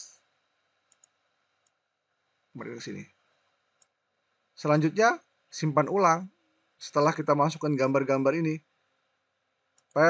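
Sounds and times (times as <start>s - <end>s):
computer mouse clicks: 0.8s - 1.8s, 3.7s - 4.0s, 9.7s - 10.0s.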